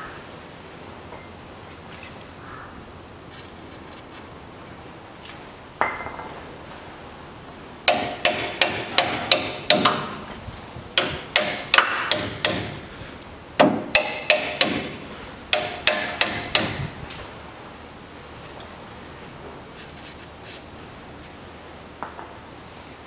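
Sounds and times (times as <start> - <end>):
hammer ringing on steel: 11.0 - 12.8, 13.6 - 16.9.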